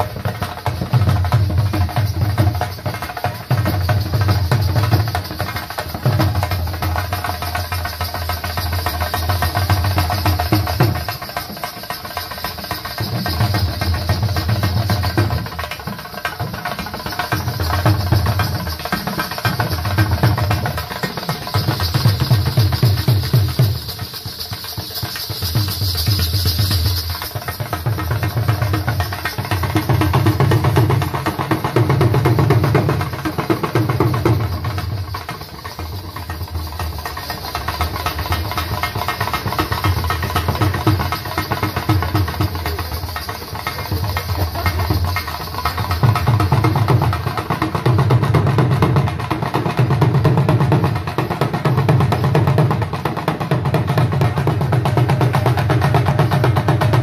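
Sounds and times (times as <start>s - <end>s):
dhol drumming: 0.0s - 57.0s.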